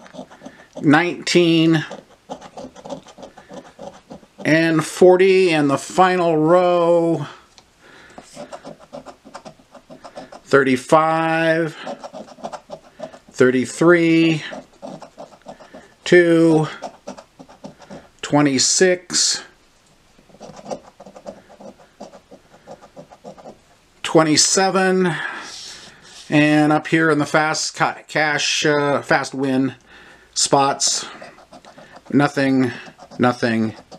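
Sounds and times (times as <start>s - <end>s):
scratching lottery ticket: 0.0s - 6.2s, 8.2s - 18.2s, 20.3s - 23.6s, 30.5s - 33.9s.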